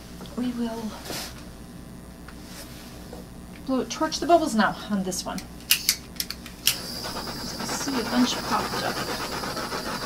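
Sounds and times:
torch igniter clicks: 5.4s - 6.9s
torch flame hissing: 6.7s - 10.0s.

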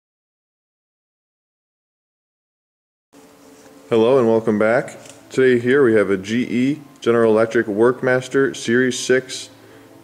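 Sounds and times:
low electrical buzz: 3.2s - 10.0s
man's voice: 3.9s - 9.6s.

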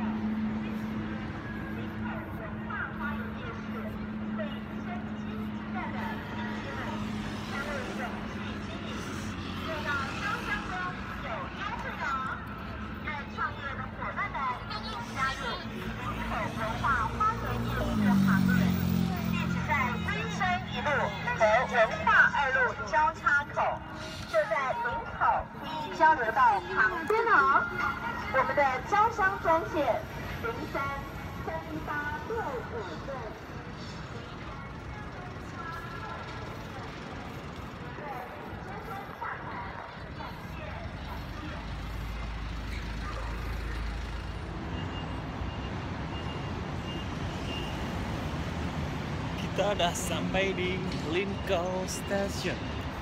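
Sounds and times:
passing vehicle rumble: 0.0s - 53.0s
traffic hum: 0.0s - 53.0s
voices: 0.0s - 53.0s.

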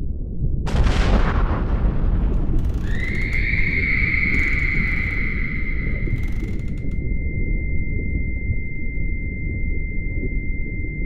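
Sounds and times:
deep steady rumble: 0.0s - 11.0s
explosion-like blast: 0.7s - 2.6s
high-pitched ringing tone: 3.0s - 11.0s.

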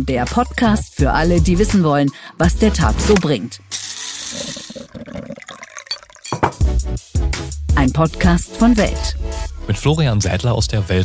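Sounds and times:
liquid pouring and splashing: 3.8s - 6.6s.

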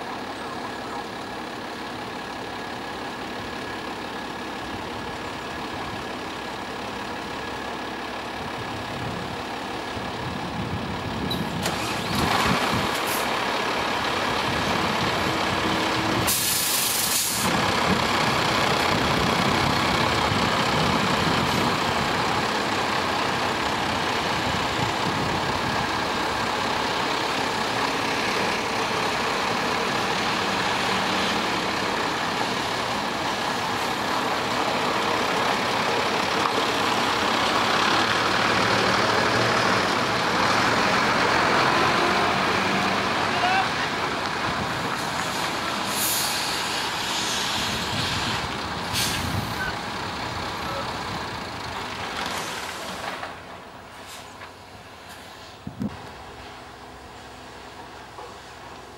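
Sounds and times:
lorry diesel engine running: 0.0s - 58.9s
air brake hisses: 16.3s - 17.5s, 45.0s - 49.7s, 54.0s - 54.4s.

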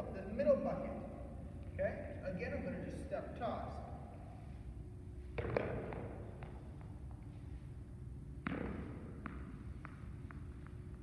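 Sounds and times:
tennis ball bouncing on gym floor: 5.2s - 7.4s, 8.2s - 11.0s.

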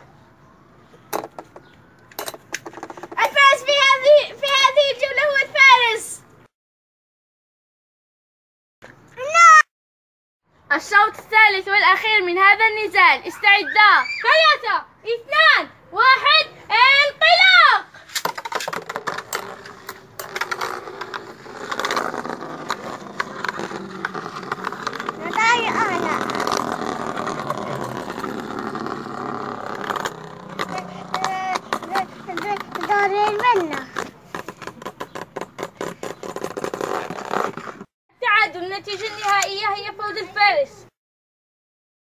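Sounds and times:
child's voice: 3.2s - 6.2s, 9.2s - 9.6s, 10.7s - 17.9s, 25.2s - 26.3s, 30.8s - 34.0s, 38.2s - 40.9s
spinning tops whirring and clacking: 18.1s - 33.8s.

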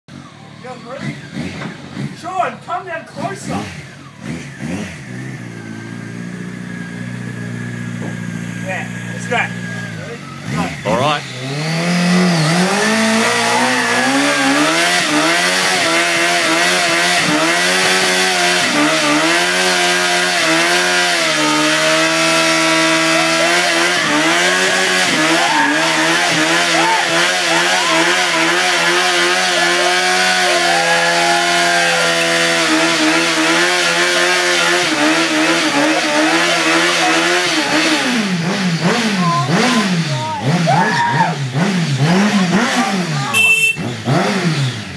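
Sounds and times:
motorcycle engine revving: 0.1s - 44.9s.

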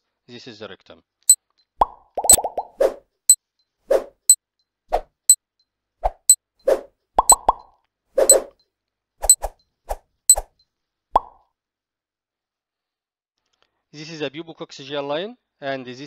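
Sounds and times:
short sharp pops and clicks: 1.8s - 2.7s, 7.2s - 7.7s.

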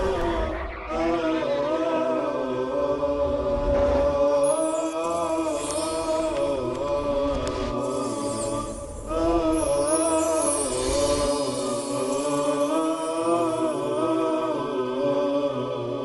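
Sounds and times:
vocal chant: 0.0s - 16.0s.

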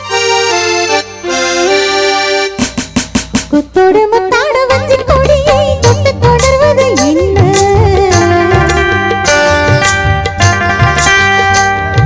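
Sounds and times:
orchestra playing film song: 0.0s - 2.8s.

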